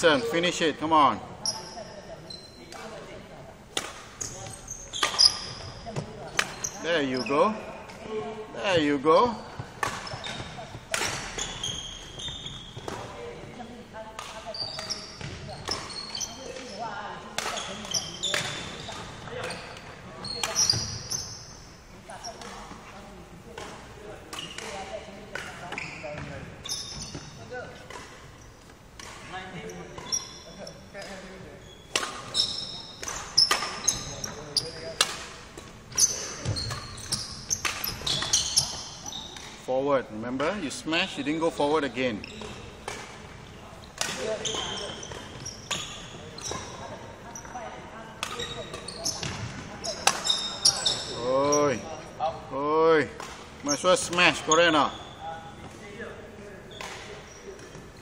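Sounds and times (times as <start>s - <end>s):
shoes squeaking on wooden floor: 4.2s - 7.8s, 8.6s - 13.4s, 14.4s - 16.9s, 17.5s - 23.0s, 24.4s - 28.8s, 29.6s - 39.7s, 40.9s - 52.1s, 53.6s - 55.7s.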